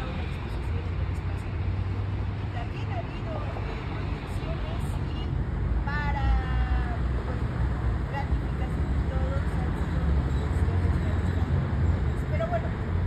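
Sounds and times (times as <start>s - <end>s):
low rumble of street traffic: 0.0s - 13.0s.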